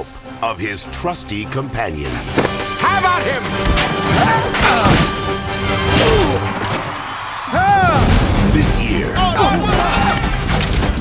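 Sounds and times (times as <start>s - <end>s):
trailer music: 0.0s - 11.0s.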